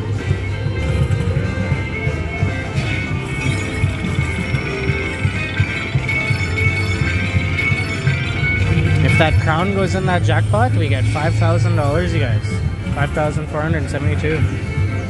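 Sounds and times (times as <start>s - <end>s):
slot machine music: 0.0s - 15.0s
sustained chiming tones: 0.0s - 15.0s
low rumble: 8.5s - 13.4s.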